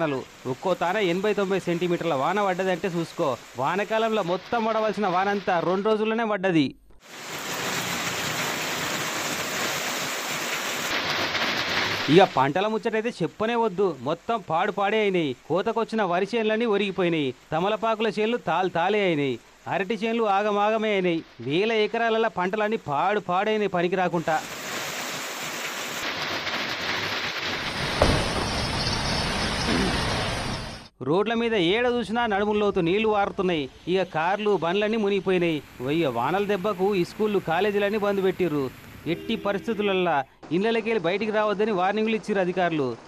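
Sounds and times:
heavy rain falling: 0:00.0 - 0:05.6, 0:07.0 - 0:30.9, 0:34.1 - 0:40.2
wind: 0:00.0 - 0:06.0, 0:07.0 - 0:43.0.

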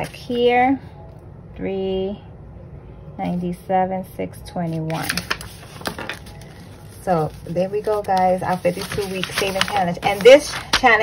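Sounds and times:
paper rustling: 0:04.9 - 0:11.0.

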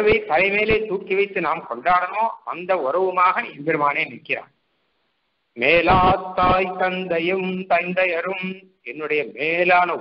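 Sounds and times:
man chanting: 0:05.6 - 0:10.0.

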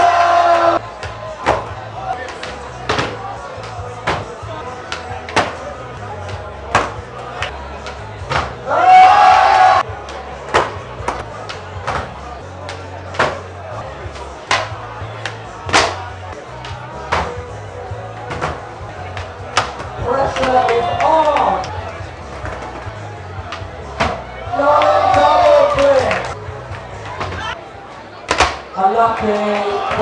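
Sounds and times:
crowd shouting: 0:00.0 - 0:30.0.

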